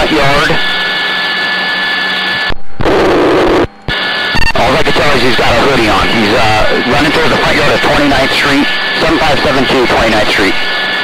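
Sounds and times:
helicopter turbine and rotor noise: 0.0 - 11.0.

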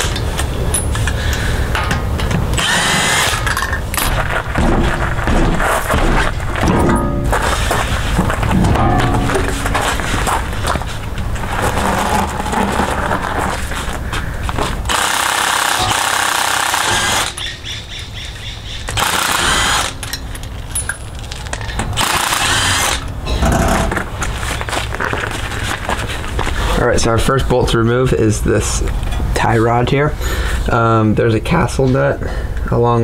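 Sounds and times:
impact wrench hammering: 1.8 - 7.5, 8.4 - 10.2, 14.9 - 17.5, 18.9 - 20.3.

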